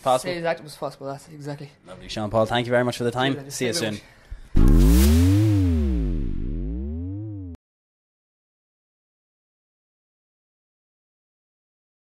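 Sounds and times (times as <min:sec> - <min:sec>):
wash of noise: 0:04.6 - 0:07.0
loud synth hit: 0:04.6 - 0:07.6
low synth tone sweeping: 0:04.6 - 0:07.6.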